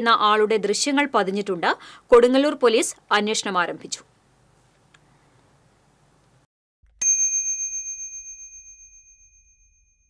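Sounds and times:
bright bell ding: 7.0 - 10.0.

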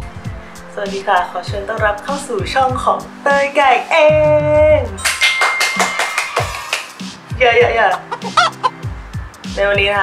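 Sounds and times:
jingle backing music: 4.6 - 7.8
hand claps: 5.0 - 7.2
cartoon chicken clucking: 7.9 - 8.8.

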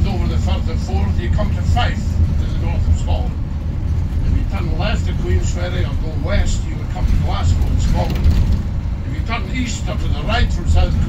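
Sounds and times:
bus engine rumble: 0.0 - 11.0
road noise: 0.0 - 11.0.

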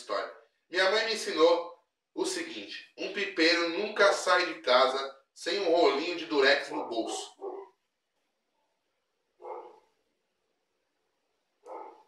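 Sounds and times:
dog barking: 6.7 - 7.8, 9.4 - 9.9, 11.6 - 12.0.

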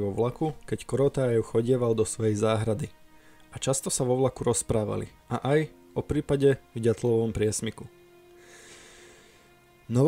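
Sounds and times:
music holding steady note: 0.0 - 10.0
soft breath-like hiss: 3.0 - 3.6, 8.2 - 9.8.

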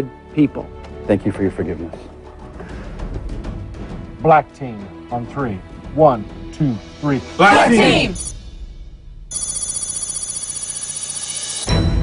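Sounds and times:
quiet background music: 0.0 - 8.3
speech: 4.3 - 8.2
alarm clock ringing: 8.1 - 8.3, 9.3 - 11.8.

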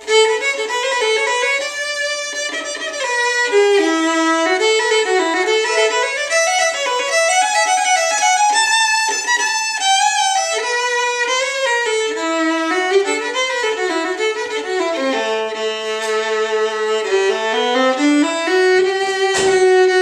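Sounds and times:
violin melody: 0.0 - 20.0.

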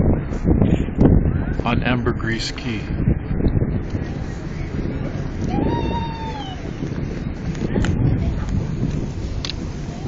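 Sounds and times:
boat engine rumble: 0.0 - 10.0
wind on microphone: 0.0 - 10.0.

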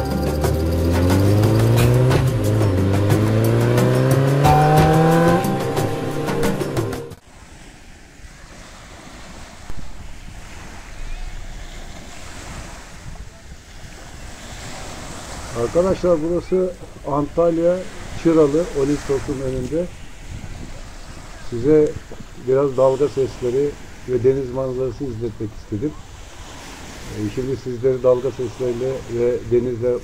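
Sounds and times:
engine accelerating hard: 0.0 - 7.2
music: 0.0 - 7.2
waves breaking on pebble beach: 7.2 - 30.0.

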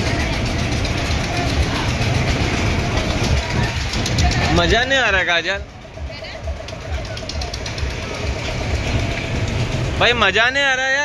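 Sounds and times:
fast even clatter: 0.0 - 10.8
ride machinery low rumble: 0.0 - 11.0.

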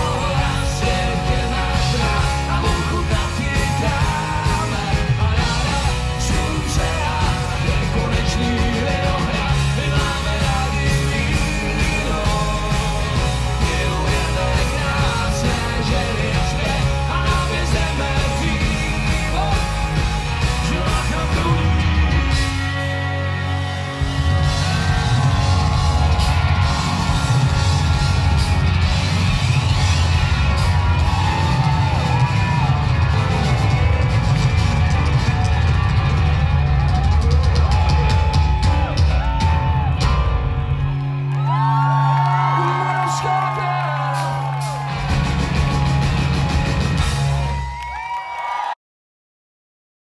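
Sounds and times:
live rock band playing: 0.0 - 47.9
audience whooping and yelling: 0.0 - 48.8.

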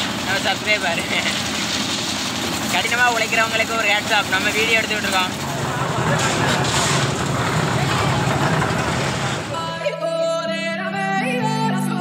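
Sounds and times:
loud rushing noise: 4.8 - 9.7
background music: 9.5 - 12.0.

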